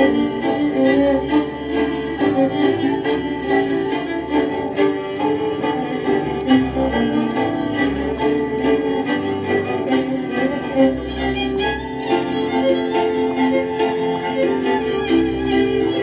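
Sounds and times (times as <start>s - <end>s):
folk dance music led by fiddle: 0.0s - 16.0s.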